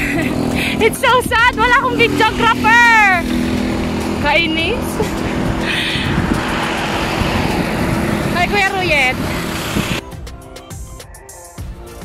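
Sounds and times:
wind and road noise: 0:00.0 - 0:10.1.

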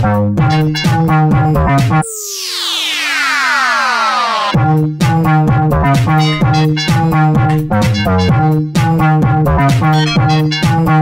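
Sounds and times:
house music beat: 0:00.4 - 0:11.0
synthesizer sweep falling in pitch: 0:01.8 - 0:04.9.

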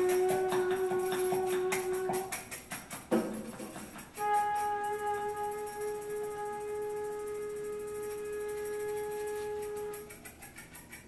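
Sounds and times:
wind instrument long note: 0:00.0 - 0:02.4, 0:04.2 - 0:10.1.

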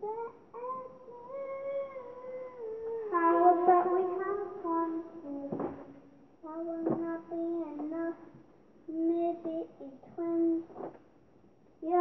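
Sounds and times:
child singing a long note: 0:00.0 - 0:08.3, 0:08.9 - 0:10.7.

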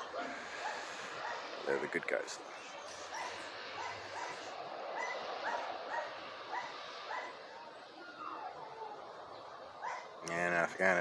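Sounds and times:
dog yapping: 0:00.6 - 0:01.5, 0:02.8 - 0:09.0, 0:09.8 - 0:10.1.

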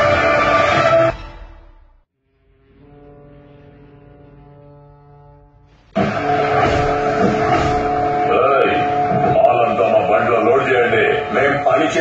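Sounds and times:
horn-like drone: 0:00.0 - 0:12.0.

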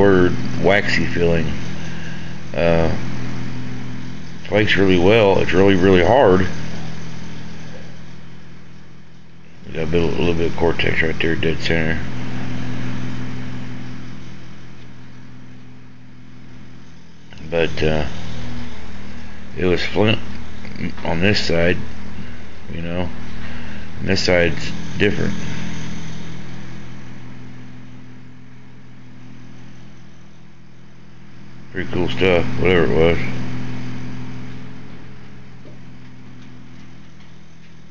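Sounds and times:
low mechanical hum: 0:00.0 - 0:37.9.

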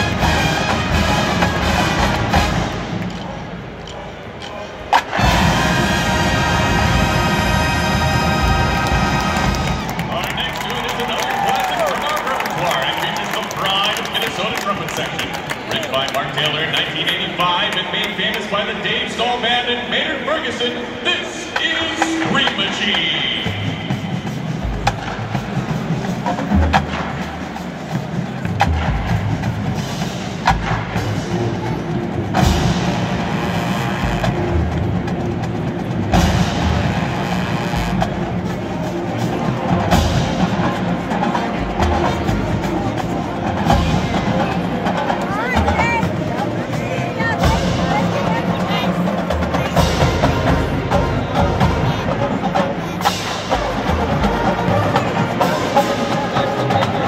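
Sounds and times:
crowd voices: 0:00.0 - 0:57.0
drumline percussion: 0:00.0 - 0:57.0
marching band brass: 0:00.0 - 0:57.0.

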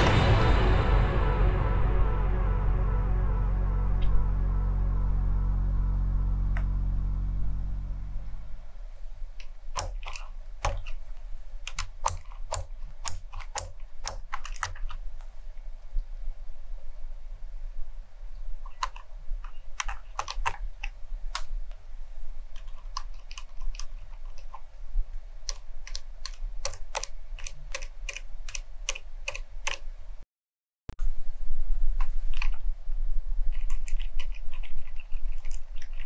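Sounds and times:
mechanical keyboard typing: 0:09.4 - 0:11.0, 0:11.6 - 0:15.0, 0:18.7 - 0:21.5, 0:22.5 - 0:24.6, 0:25.4 - 0:29.9, 0:33.5 - 0:36.0.

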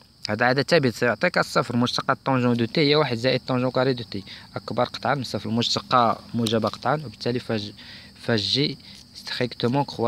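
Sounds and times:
man speaking: 0:00.2 - 0:10.0.

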